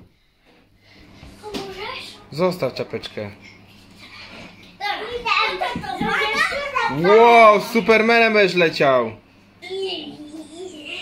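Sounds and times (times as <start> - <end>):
child chattering and calling out: 9.6 - 11.0.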